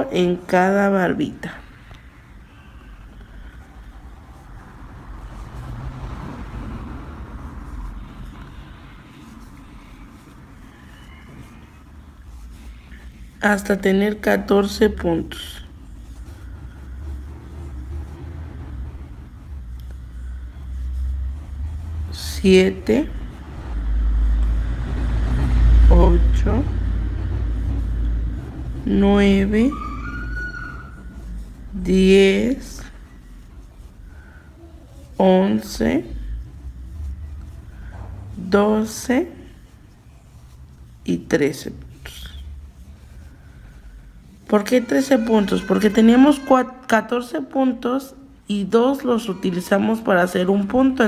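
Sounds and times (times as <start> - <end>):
vehicle passing rumble: 0.0 - 51.0.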